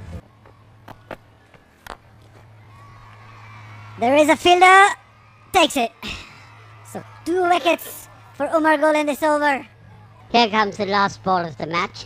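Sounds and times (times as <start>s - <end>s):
faint steady hum: 0.0s - 12.0s
low crowd noise: 0.0s - 12.0s.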